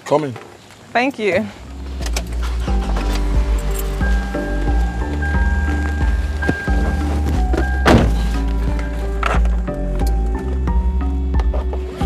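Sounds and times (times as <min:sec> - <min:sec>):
film music held tones: 0:01.5 - 0:12.0
car door shutting: 0:01.9 - 0:10.4.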